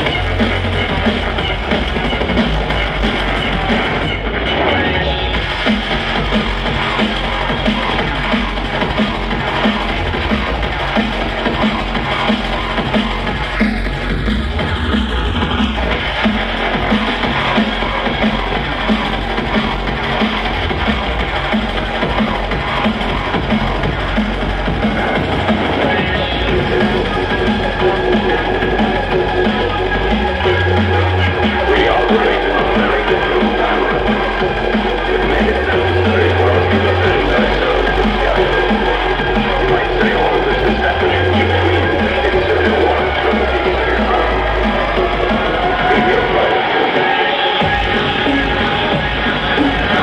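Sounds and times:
drum and bass over club sound system: 0.0s - 50.0s.

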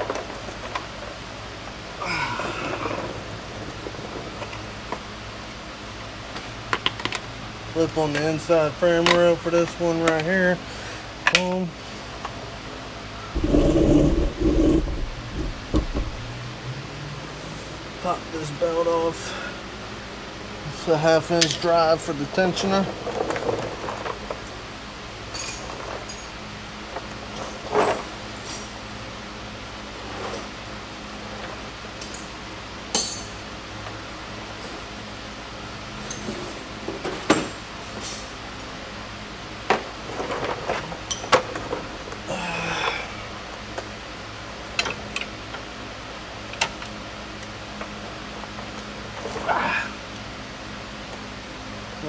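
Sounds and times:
steady low hum: 10.4s - 23.1s
hand tools clinking against metal: 25.3s - 26.3s, 32.9s - 33.5s.

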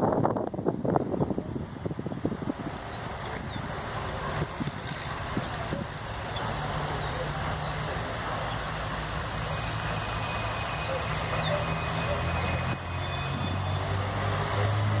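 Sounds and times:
diesel train engine drone: 0.0s - 15.0s.

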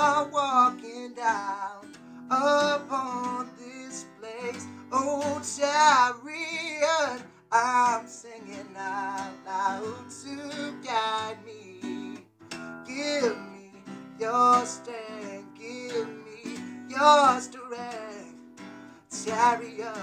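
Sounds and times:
man singing: 0.0s - 12.2s, 12.8s - 18.5s, 19.1s - 20.0s
strummed acoustic guitar: 0.0s - 20.0s.

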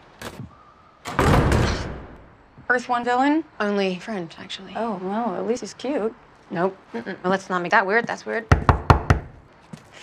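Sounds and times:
heavy wooden doors opening: 1.0s - 2.4s.

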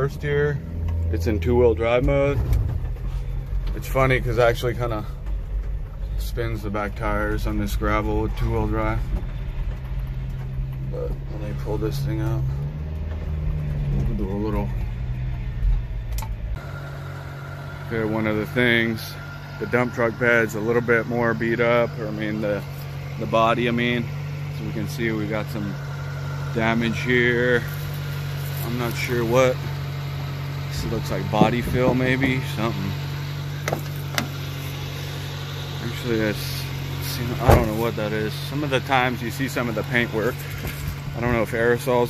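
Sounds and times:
truck engine idling hum: 0.0s - 42.0s
truck engine rumble: 0.0s - 42.0s.

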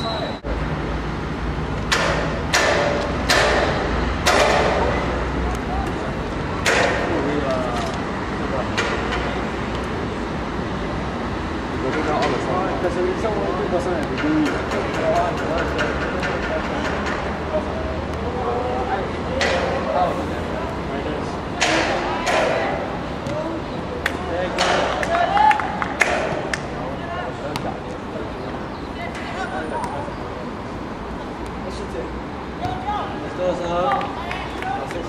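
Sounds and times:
voices shouting and calling: 0.0s - 0.6s, 11.8s - 35.0s
sharp knocks: 1.8s - 5.0s, 6.6s - 7.2s, 8.7s - 9.4s, 14.1s - 17.4s, 21.6s - 22.7s, 24.6s - 25.1s.

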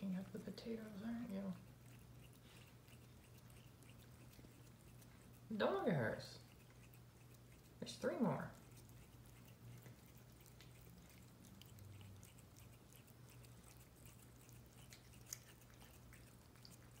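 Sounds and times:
cat chewing and licking: 0.0s - 17.0s
faint low hum: 0.0s - 17.0s.

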